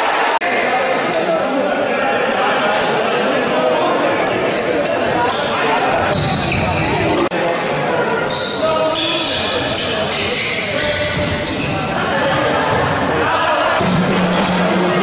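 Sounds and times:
echoing voices: 0.0s - 15.0s
sneakers squeaking: 4.2s - 7.3s, 7.9s - 13.2s, 13.8s - 14.9s.

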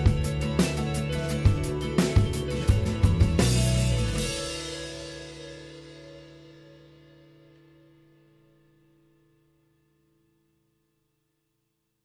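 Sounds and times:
rock band final chord: 0.0s - 7.5s
cymbal wash: 0.0s - 8.8s.

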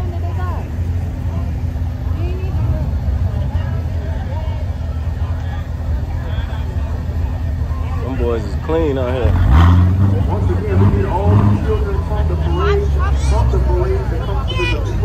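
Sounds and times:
car engines running slowly: 0.0s - 15.0s
faint crowd chatter: 0.0s - 15.0s.

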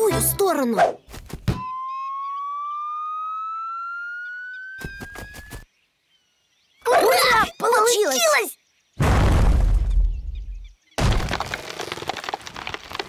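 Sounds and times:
rising slide whistle tone: 1.6s - 5.6s.

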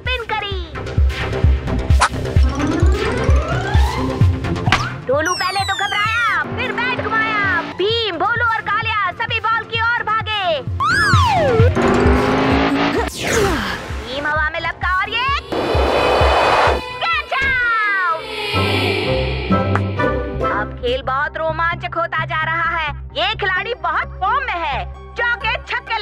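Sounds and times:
cartoon background music: 0.1s - 15.5s, 16.7s - 21.7s
whistle-like glides: 10.8s - 11.8s
whooshing rushes: 15.4s - 17.0s.

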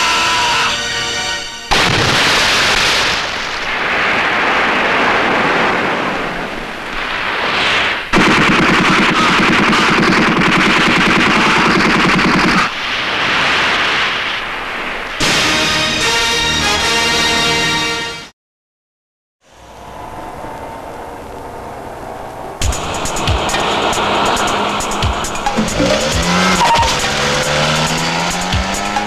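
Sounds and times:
automatic rifle fire: 8.2s - 12.7s.

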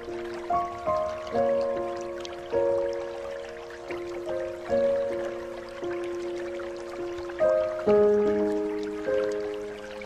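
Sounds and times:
slow soft piano music: 0.0s - 10.0s
trickling dripping water: 0.0s - 10.0s.

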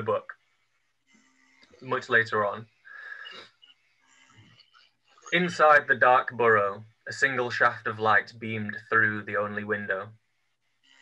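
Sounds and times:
person breathing in: 2.9s - 3.5s.

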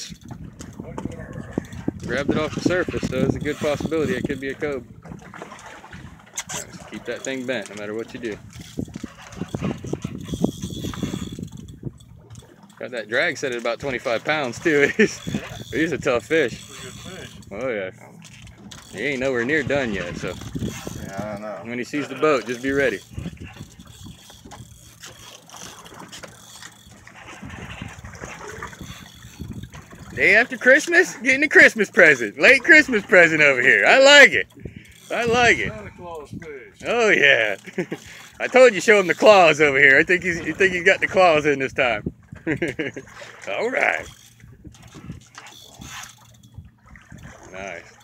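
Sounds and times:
water lapping against boat hull: 0.0s - 48.0s
fishing reel ratchet clicking: 1.7s - 4.7s, 8.5s - 12.7s, 13.4s - 17.6s, 18.2s - 21.4s, 22.3s - 27.1s, 28.4s - 30.7s, 34.5s - 35.5s, 44.0s - 46.6s.

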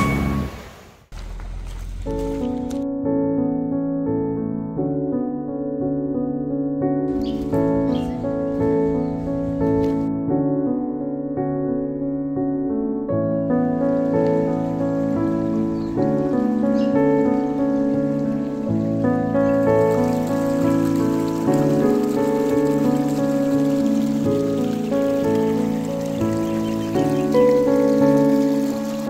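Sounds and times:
soft piano music: 1.9s - 29.0s
river water rushing: 14.5s - 29.0s.

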